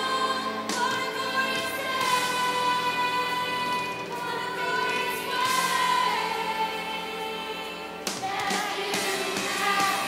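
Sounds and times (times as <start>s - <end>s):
children's choir singing: 0.0s - 10.0s
woman singing: 0.0s - 10.0s.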